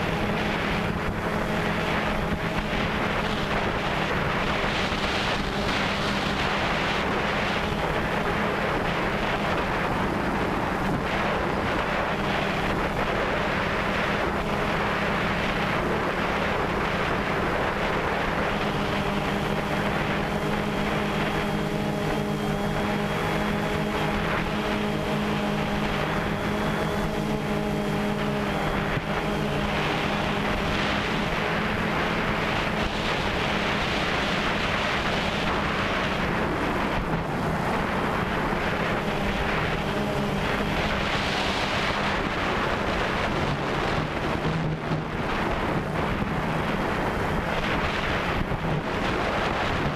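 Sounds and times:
drone propellers buzzing: 0.0 - 49.9
wind on microphone: 0.0 - 49.9.

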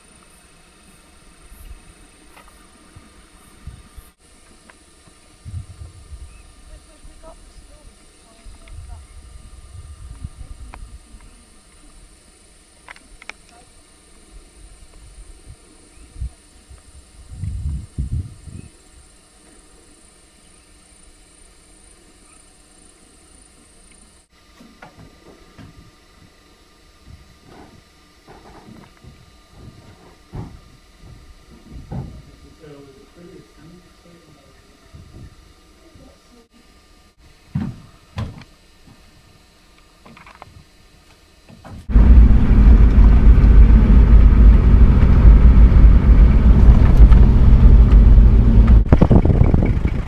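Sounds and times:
low thumps: 41.9 - 50.0.

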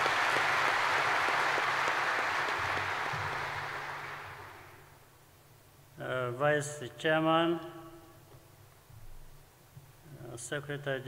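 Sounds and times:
audience applauding: 0.0 - 4.9.

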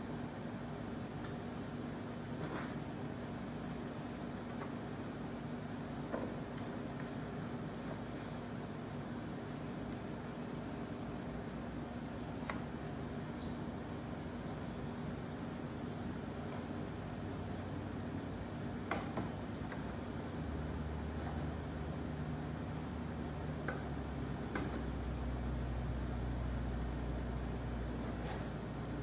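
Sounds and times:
low machine hum: 0.0 - 29.0.

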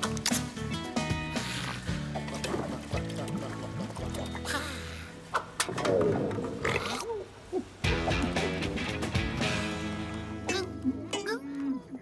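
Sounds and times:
background music: 0.0 - 6.5, 7.8 - 11.8.

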